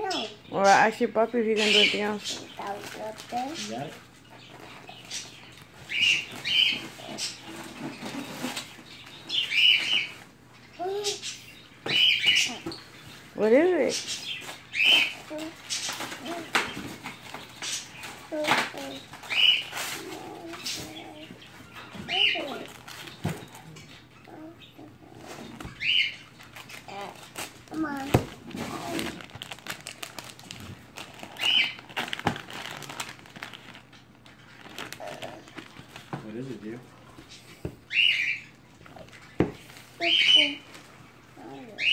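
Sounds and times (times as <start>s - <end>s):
wrapping paper crinkling: 22.2s - 23.7s, 26.3s - 37.1s.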